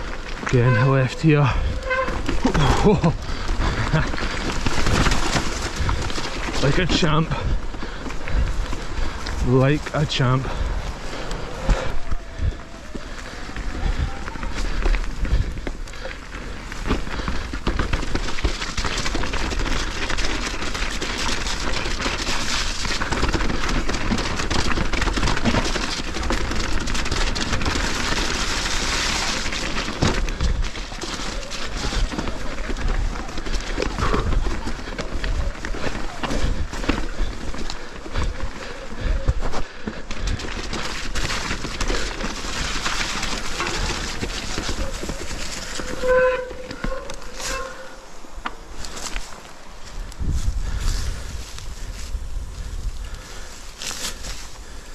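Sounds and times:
bike rattling over rocks: 0:00.0 - 0:54.9
wind rush on microphone: 0:49.9 - 0:53.8.

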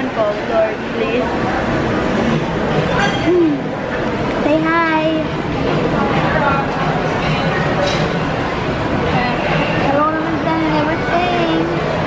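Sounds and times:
noisy background din: 0:00.0 - 0:12.0.

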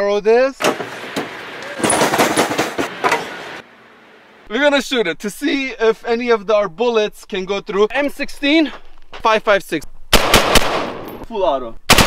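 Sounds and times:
metal cabinet clattering and banging: 0:00.6 - 0:03.4.

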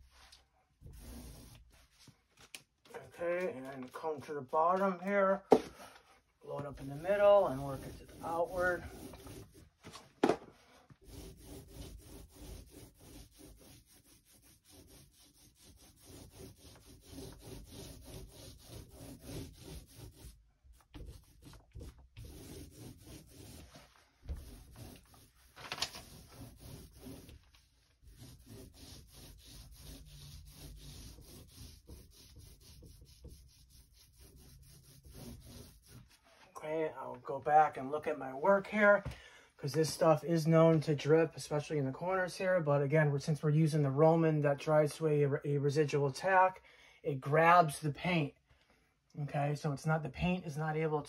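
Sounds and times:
paintbrush brushing on door: 0:00.8 - 0:02.2, 0:06.6 - 0:09.8, 0:10.9 - 0:36.2.

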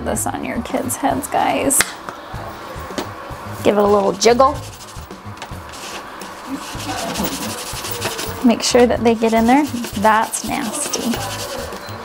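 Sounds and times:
plastic dish scraping on countertop: 0:05.7 - 0:11.8.

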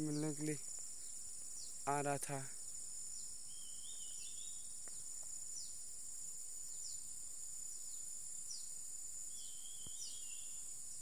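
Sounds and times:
insect chorus drone: 0:00.0 - 0:11.0.

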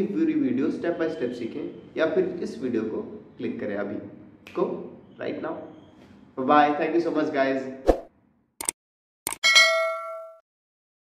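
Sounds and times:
bell ding: 0:09.4 - 0:10.4.

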